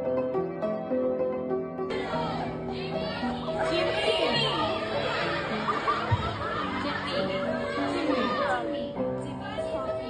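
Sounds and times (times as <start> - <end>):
high-pitched audience voices: 1.9 - 10.0.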